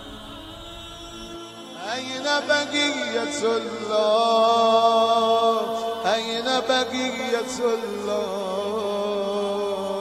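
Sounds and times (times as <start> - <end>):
sustained drone: 0.0 - 4.2
person chanting: 0.0 - 10.0.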